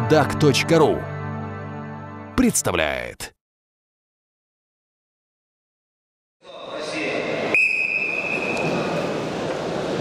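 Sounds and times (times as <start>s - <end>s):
arena crowd noise: 6.4s - 10.0s
referee whistle long blast: 7.5s - 8.7s.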